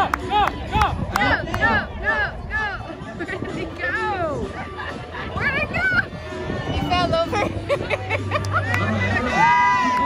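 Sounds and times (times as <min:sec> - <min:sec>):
voices shouting and cheering: 0:00.0 - 0:10.0.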